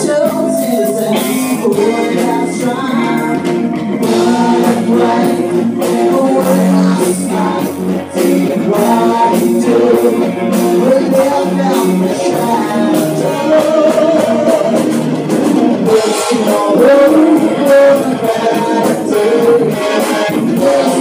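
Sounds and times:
man singing into microphone: 0:00.0 - 0:15.0, 0:15.7 - 0:21.0
drum kit steady beat: 0:00.0 - 0:21.0
electric bass: 0:00.0 - 0:21.0
electric guitar: 0:00.0 - 0:21.0.

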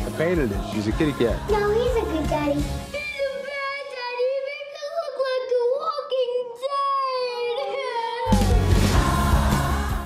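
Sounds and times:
girl wailing: 0:06.6 - 0:08.7.

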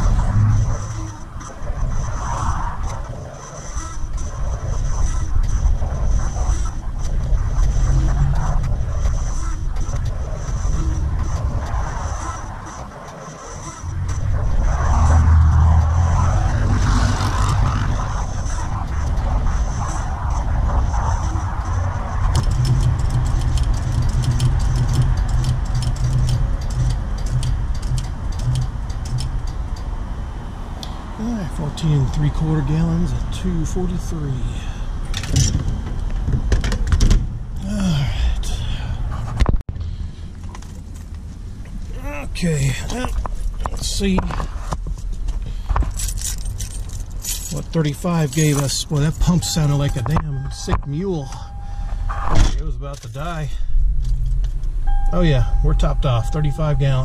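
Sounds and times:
rapid ticking: 0:00.0 - 0:30.0
fuel pump motor droning: 0:00.0 - 0:31.7.

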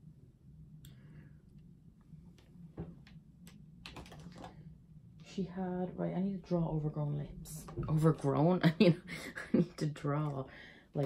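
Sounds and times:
low steady hum: 0:00.0 - 0:11.0
makeup items clicking: 0:03.4 - 0:04.6.

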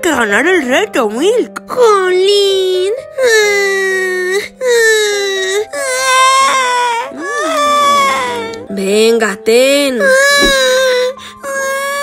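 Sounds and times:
background music with low note: 0:00.0 - 0:12.0
voice crying like a baby: 0:06.0 - 0:08.7.

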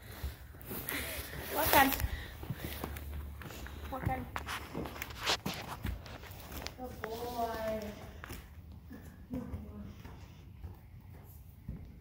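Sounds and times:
horse hooves on soft ground: 0:00.0 - 0:12.0.

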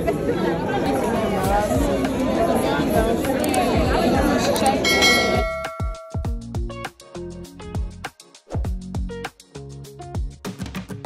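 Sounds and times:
bell-like ding: 0:04.8 - 0:06.4
background music with kick drum: 0:05.0 - 0:11.0.

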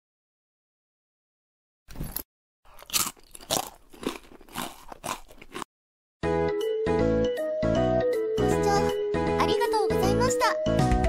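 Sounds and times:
loud chewing crunches: 0:01.9 - 0:05.7.

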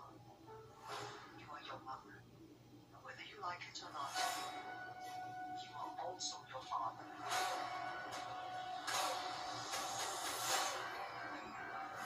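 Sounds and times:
trailer music with held tone: 0:04.0 - 0:06.1, 0:06.9 - 0:12.0.

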